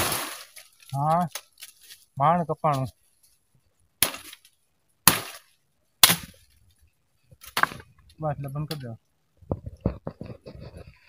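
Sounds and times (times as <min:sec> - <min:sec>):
blade chopping into branch: 0:04.0 - 0:04.4, 0:05.0 - 0:06.4.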